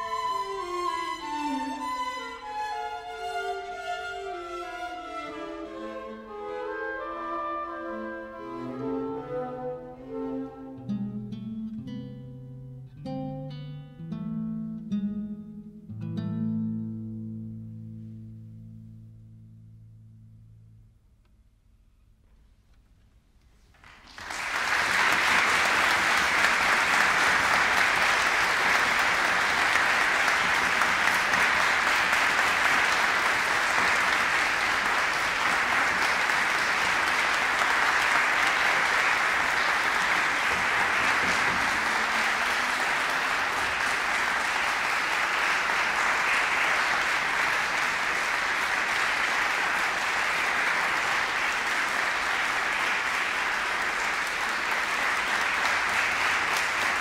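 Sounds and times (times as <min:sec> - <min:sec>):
crowd applauding: 0:23.7 - 0:57.0.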